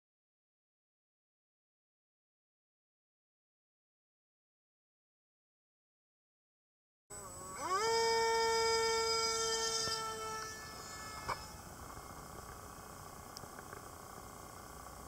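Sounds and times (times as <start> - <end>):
drone motor whine: 7.1 - 15.0.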